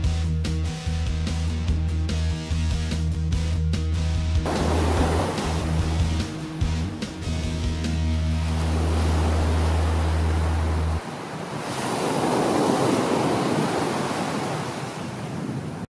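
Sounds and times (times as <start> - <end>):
waves breaking on beach: 4.4 - 15.9.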